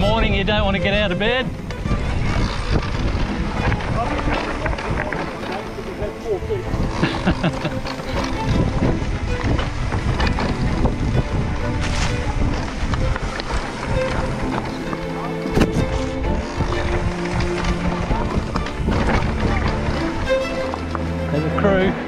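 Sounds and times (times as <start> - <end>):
mountain bike rattling on dirt trail: 0.0 - 22.0
music playing: 0.0 - 22.0
wind rushing over microphone: 0.0 - 22.0.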